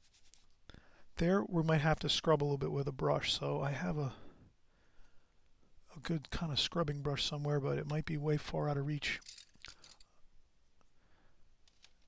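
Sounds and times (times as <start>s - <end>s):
person speaking: 1.2s - 4.4s, 5.8s - 9.9s.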